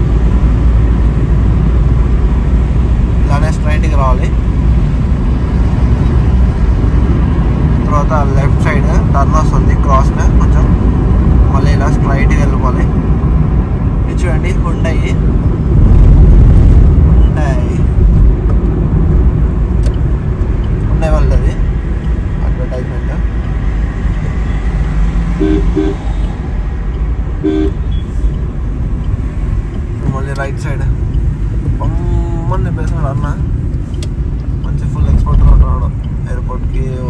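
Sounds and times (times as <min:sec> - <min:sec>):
car engine and tyre rumble: 0:00.0 - 0:37.0
car horn beeps: 0:25.4 - 0:26.4, 0:27.4 - 0:28.2.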